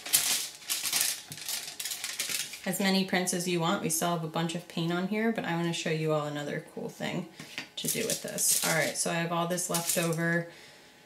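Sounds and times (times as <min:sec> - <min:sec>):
aluminium foil crinkling: 0:00.0 - 0:02.8, 0:07.8 - 0:10.4.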